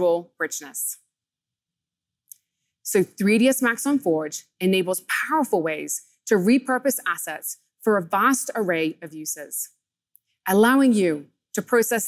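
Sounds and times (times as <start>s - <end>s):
woman speaking: 0.0s - 1.0s, 2.9s - 9.7s, 10.5s - 12.0s.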